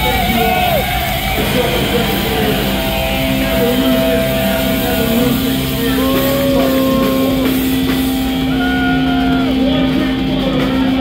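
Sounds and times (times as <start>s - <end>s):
distorted electric guitars: 0.0s - 11.0s.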